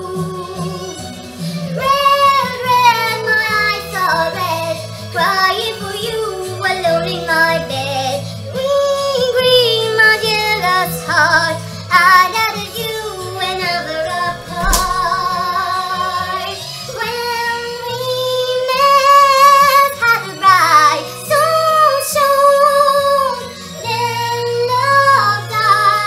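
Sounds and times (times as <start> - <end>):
backing track music: 14.0 - 15.7.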